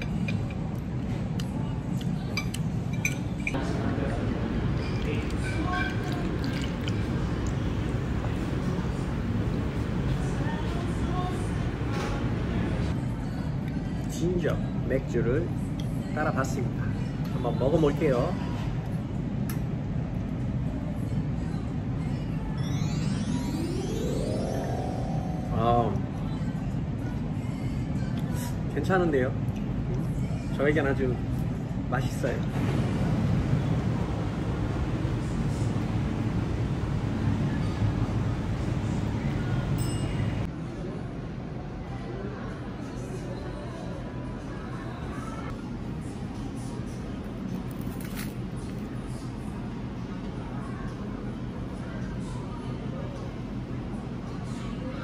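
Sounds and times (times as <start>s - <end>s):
low room rumble: 0.0s - 17.4s, 18.2s - 55.0s
rising musical sound effect: 22.6s - 26.2s.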